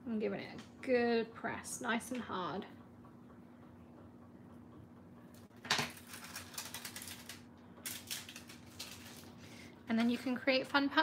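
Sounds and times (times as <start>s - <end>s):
transfer foil crackling: 5.6s - 9.5s.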